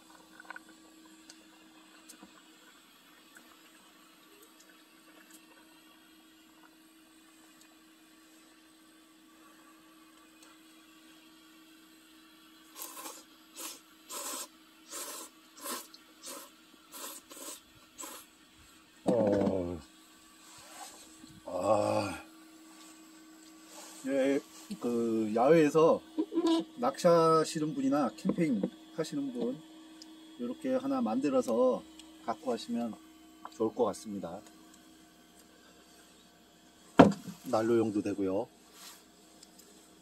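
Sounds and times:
man slurping noodles: 12.7s - 18.3s
short vocal sound: 21.4s - 22.3s.

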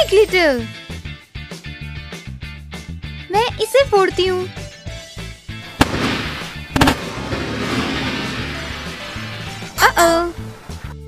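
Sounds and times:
background music: 0.0s - 11.0s
sharp crack: 5.7s - 9.8s
balloon bursting bang: 5.8s - 9.7s.

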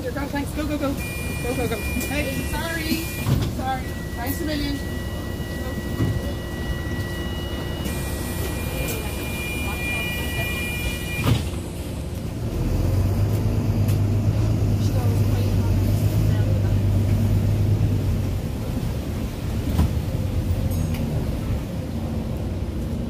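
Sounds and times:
diesel bus engine hum: 0.0s - 23.0s.

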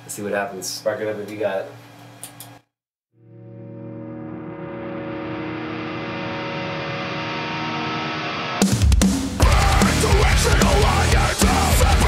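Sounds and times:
sustained effects-laden guitar chord: 3.2s - 8.6s
heavy rock band playing: 5.3s - 12.0s.

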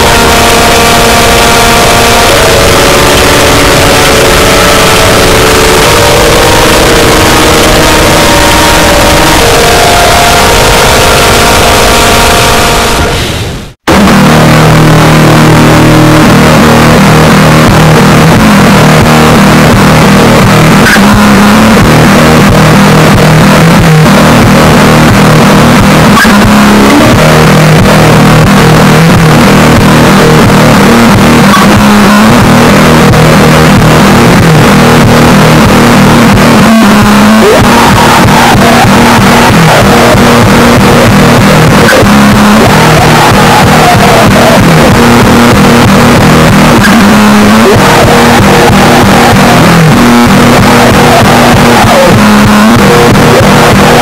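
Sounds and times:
distorted electric guitar chords: 0.0s - 54.0s.

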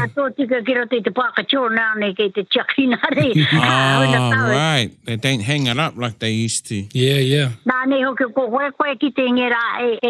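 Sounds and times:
woman talking over telephone: 0.0s - 4.6s, 7.7s - 10.0s.

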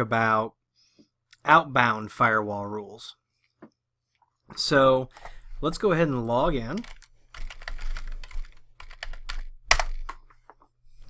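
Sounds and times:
typing on computer keyboard: 6.6s - 10.4s.

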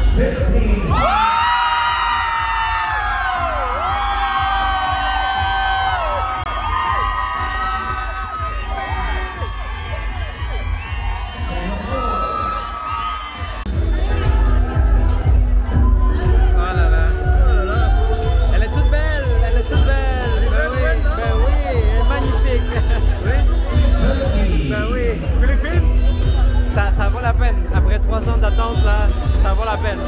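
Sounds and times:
crowd screaming and cheering: 0.0s - 27.7s
music from venue: 0.0s - 30.0s.

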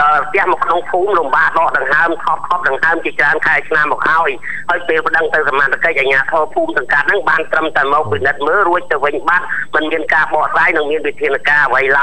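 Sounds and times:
news broadcast voice talking: 0.0s - 12.0s.

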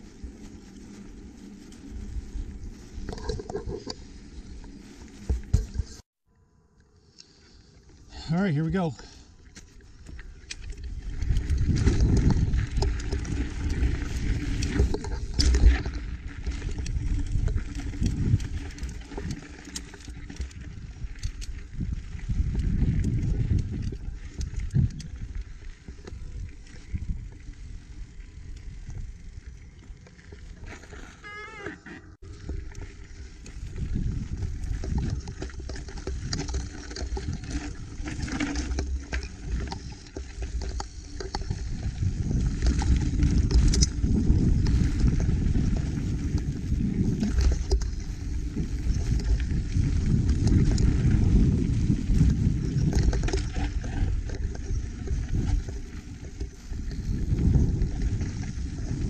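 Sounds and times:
bike tires on loose dirt: 0.0s - 59.0s
bike rattling over bumps: 8.7s - 31.2s, 31.8s - 59.0s
wind on microphone: 10.5s - 19.5s, 20.3s - 29.8s, 31.2s - 59.0s
wavering high tone: 31.2s - 32.2s.

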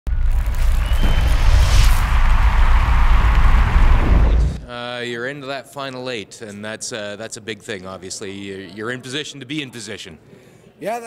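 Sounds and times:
deep bass rumble: 0.1s - 4.6s
whooshing sweep: 0.1s - 4.6s.

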